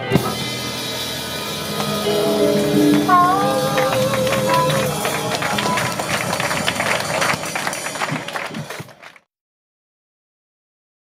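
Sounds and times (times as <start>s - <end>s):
audience applause: 2.1s - 9.2s.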